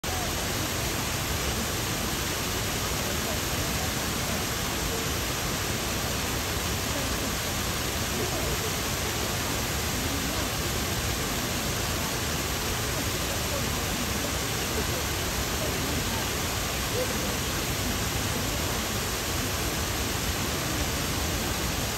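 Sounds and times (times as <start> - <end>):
waterfall rushing into pond: 0.0 - 21.9.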